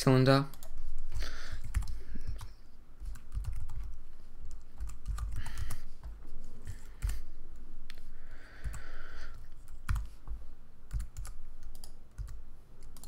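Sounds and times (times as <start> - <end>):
computer keyboard keystrokes: 1.6 - 7.2, 9.6 - 10.1, 10.9 - 13.0.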